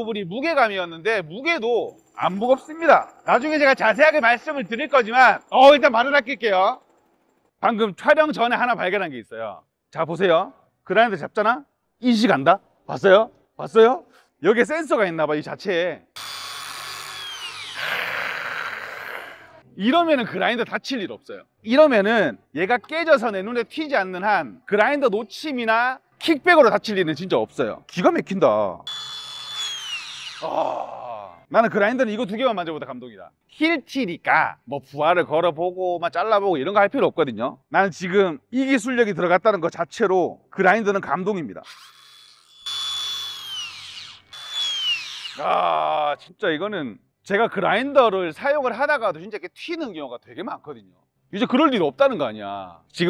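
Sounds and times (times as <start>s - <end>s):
angle grinder motor whine: 16.2s - 19.6s, 28.9s - 30.5s, 41.7s - 45.4s.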